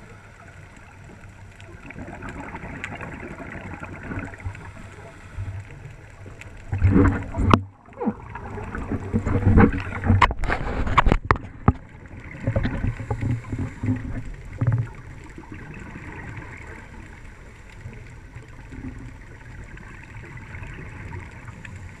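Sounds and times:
underwater bubbles gurgling: 0.0 - 22.0
underwater water noise: 0.0 - 22.0.

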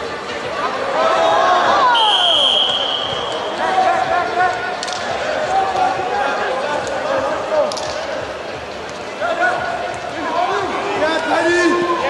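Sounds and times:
referee's whistle blast: 2.0 - 3.5.

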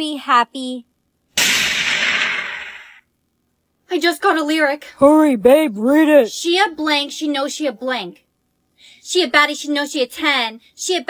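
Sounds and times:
loud blast: 1.4 - 3.0.

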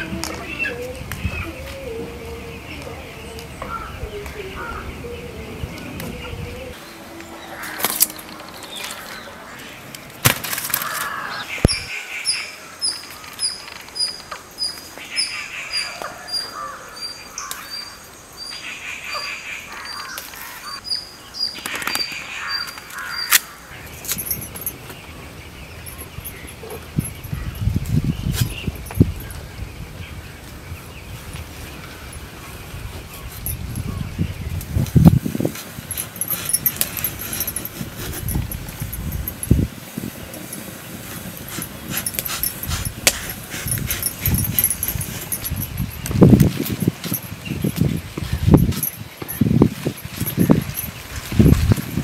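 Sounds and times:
leaves rustling: 0.0 - 52.0
bird chirping: 11.2 - 51.8.

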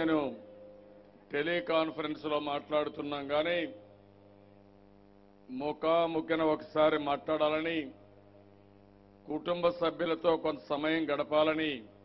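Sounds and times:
man speaking over loudspeaker: 0.0 - 0.4, 1.3 - 3.8, 5.5 - 8.0, 9.3 - 11.9
faint electrical mains hum: 0.0 - 12.0.

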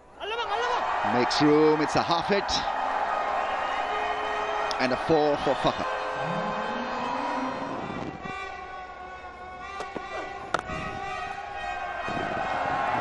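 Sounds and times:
stadium crowd noise: 0.0 - 13.0
long steady horn: 5.8 - 13.0.

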